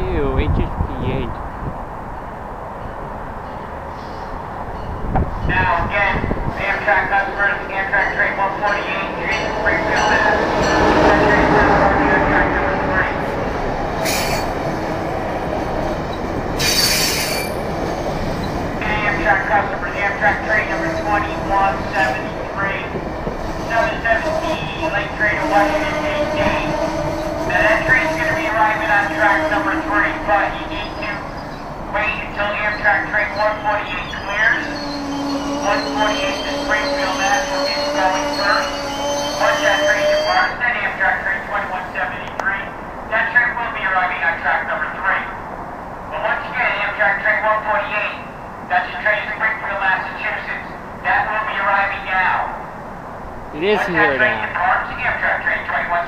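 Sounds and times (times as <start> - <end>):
train cars rolling: 2.1 - 40.5
wheels and brakes squealing: 14.0 - 14.6, 16.6 - 17.6, 30.8 - 31.7, 32.6 - 40.6.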